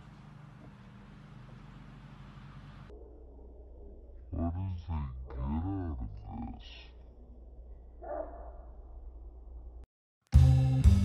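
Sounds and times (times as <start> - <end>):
faint low rumble: 0.0 - 9.9.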